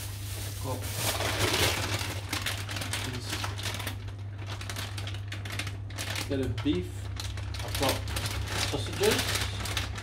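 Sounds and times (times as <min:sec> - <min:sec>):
low steady hum: 0:00.0 - 0:10.0
plastic packaging crinkling: 0:00.0 - 0:10.0.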